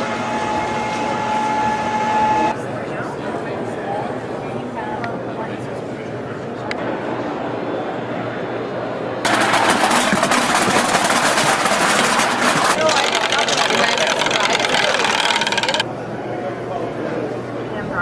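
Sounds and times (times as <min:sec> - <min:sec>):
fast mechanical clicking rattle: 0:09.3 - 0:15.8
voices: 0:12.4 - 0:18.0.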